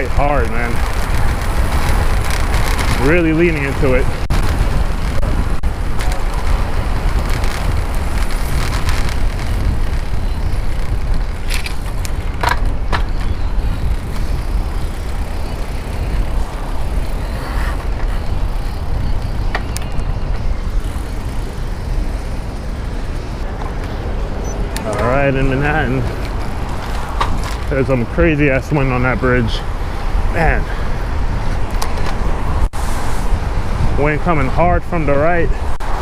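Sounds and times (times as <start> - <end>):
road and traffic noise: 0.0 - 36.0
wind buffeting microphone: 0.0 - 36.0.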